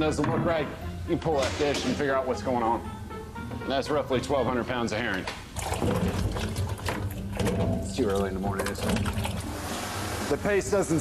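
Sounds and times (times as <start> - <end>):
water splashing: 5.5 - 10.3.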